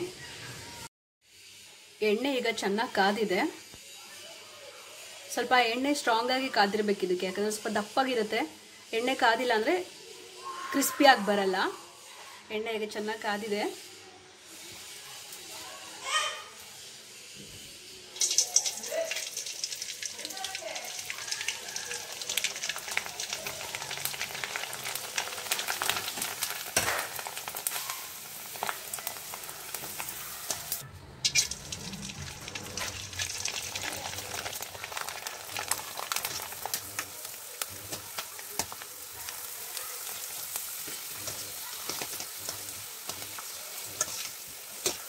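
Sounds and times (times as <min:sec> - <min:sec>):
food sizzling and crackling in oil: 0:00.1 - 0:45.0.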